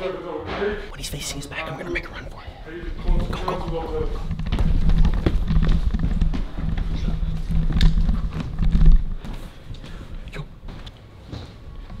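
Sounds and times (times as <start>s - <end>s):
running footsteps on floor: 2.5s - 12.0s.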